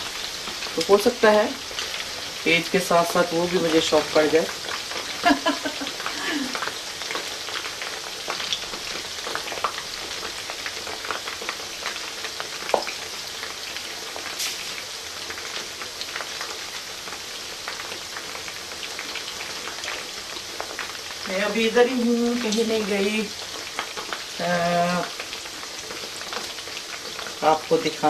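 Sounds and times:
oil sizzling and crackling: 0:00.0 - 0:28.0.

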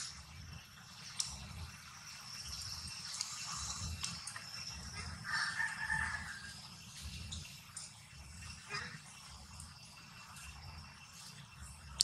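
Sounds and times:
rooster crowing: 0:05.0 - 0:06.7.

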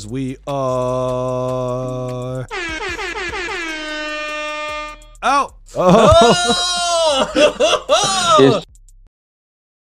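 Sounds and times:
air horn blasts: 0:02.5 - 0:05.2.

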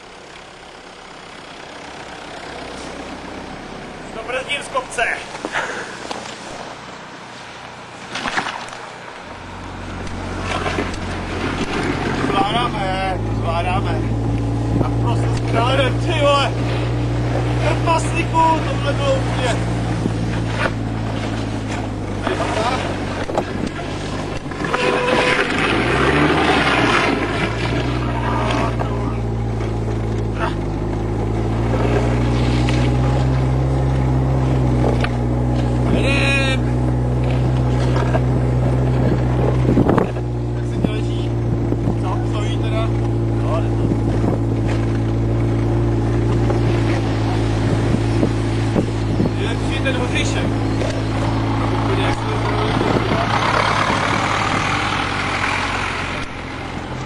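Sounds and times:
engine running: 0:00.0 - 0:57.0.

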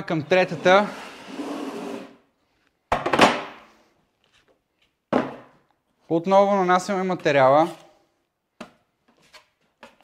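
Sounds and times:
taping knife scraping compound: 0:00.3 - 0:02.2.

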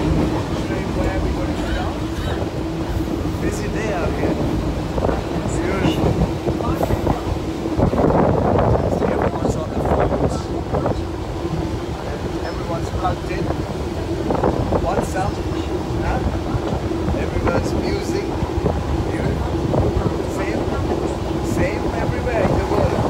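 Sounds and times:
electric train rumbling: 0:00.0 - 0:23.0
passengers talking: 0:00.0 - 0:23.0.

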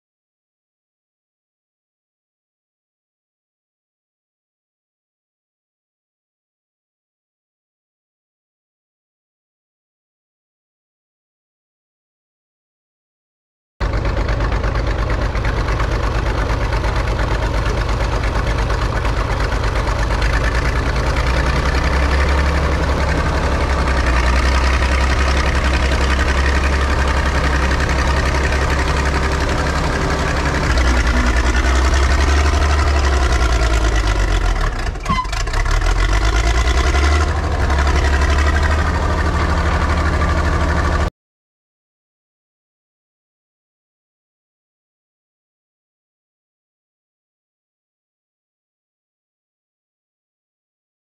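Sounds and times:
diesel dozer engine rumbling: 0:13.8 - 0:41.1.

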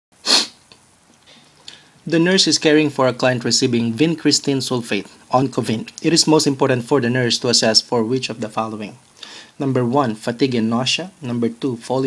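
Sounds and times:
breath burst into microphone: 0:00.2 - 0:00.6, 0:09.2 - 0:09.6
person speaking: 0:01.6 - 0:12.0
faint breathing: 0:09.2 - 0:09.6.

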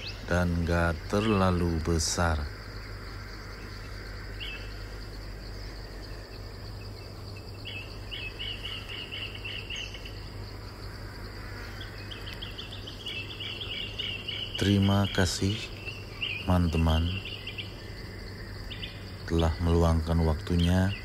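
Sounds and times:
insects high-pitched drone: 0:00.0 - 0:21.0
insects rapid chirps: 0:00.0 - 0:21.0.

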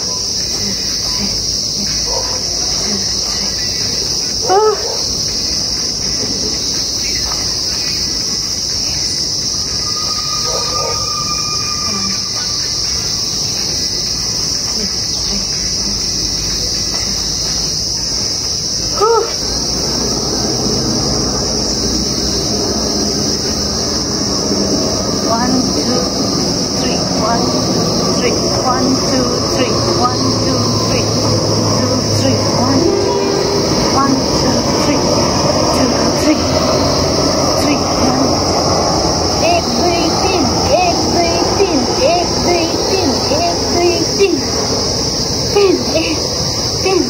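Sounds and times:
insects droning: 0:00.0 - 0:47.0.

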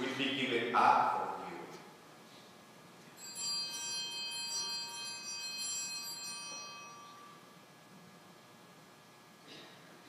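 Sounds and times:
altar bells ringing: 0:03.2 - 0:07.6.

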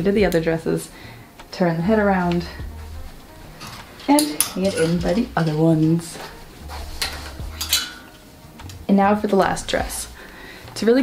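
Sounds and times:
hangers clinking on metal rail: 0:03.4 - 0:08.8.

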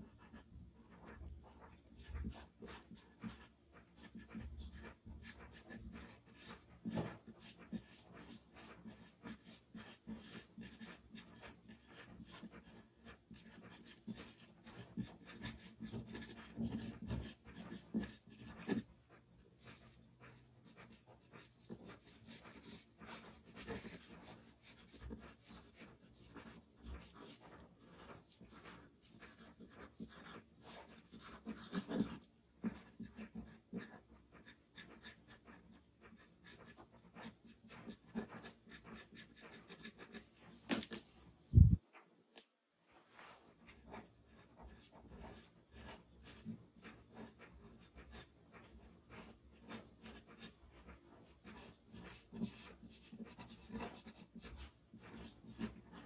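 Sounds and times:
pencil scratching on paper: 0:00.0 - 0:41.8, 0:43.1 - 0:56.0.

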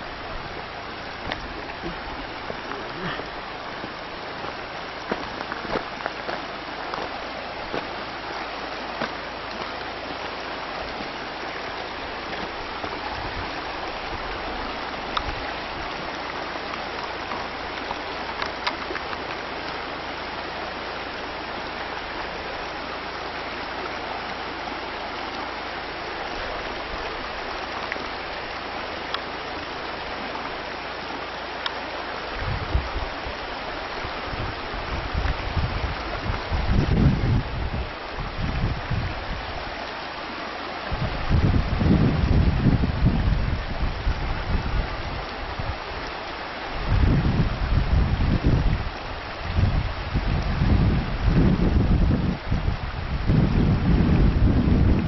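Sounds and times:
river rushing over rocks: 0:00.0 - 0:55.0
wind buffeting microphone: 0:10.9 - 0:19.6, 0:32.2 - 0:39.8, 0:40.8 - 0:55.0.

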